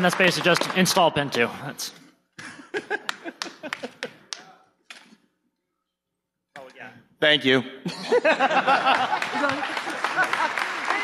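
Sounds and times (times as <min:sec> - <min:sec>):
people clapping: 0:00.0 - 0:01.5, 0:02.8 - 0:04.6, 0:08.5 - 0:11.0
people laughing: 0:02.4 - 0:04.6, 0:07.8 - 0:11.0.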